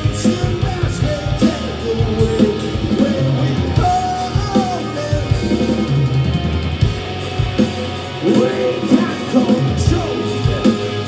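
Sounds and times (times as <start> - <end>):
loud drum kit: 0.0 - 11.0
rock band playing live: 0.0 - 11.0.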